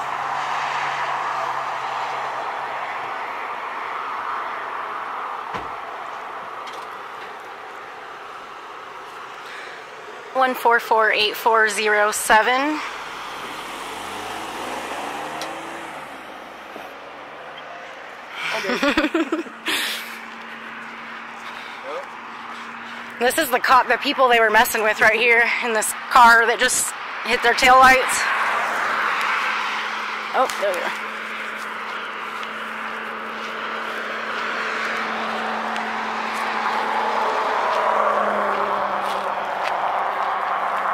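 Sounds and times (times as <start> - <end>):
car driving by: 0.0 - 40.9
low steady traffic hum: 0.0 - 40.9
steady roadway hiss: 0.0 - 40.9
person talking: 10.4 - 12.9, 18.4 - 19.2, 23.2 - 28.3, 30.4 - 31.0.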